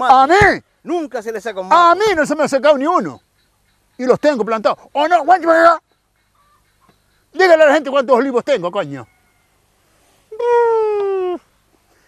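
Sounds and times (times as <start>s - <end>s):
long high-pitched cry: 10.3s - 11.5s.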